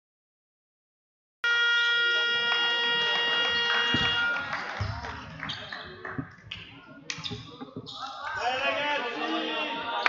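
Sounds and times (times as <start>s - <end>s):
hall background noise: 1.9s - 10.0s.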